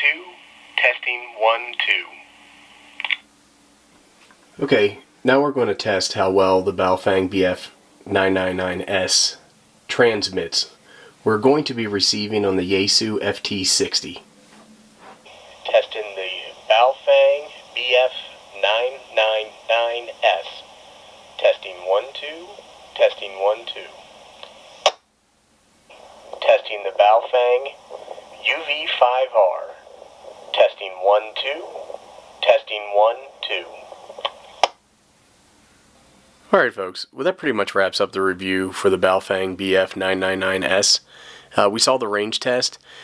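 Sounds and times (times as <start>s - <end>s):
radio squelch crackle: 0.0s - 3.3s, 11.8s - 25.0s, 25.9s - 34.8s
radio speaker hiss and hum: 0.0s - 25.1s, 25.8s - 34.8s, 35.4s - 43.0s.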